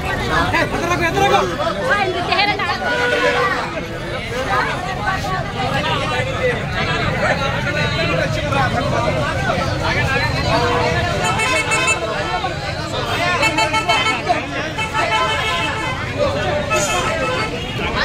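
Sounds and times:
crowd talking: 0.0 - 18.0
street traffic: 0.0 - 18.0
vehicle horn: 2.8 - 3.6, 11.2 - 12.1, 16.7 - 18.0.

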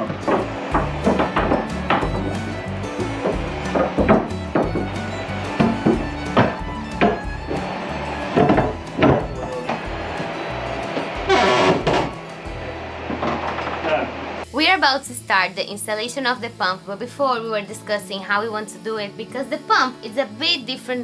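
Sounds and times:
wooden knocks and bumps: 0.0 - 12.2
background music: 0.0 - 21.0.

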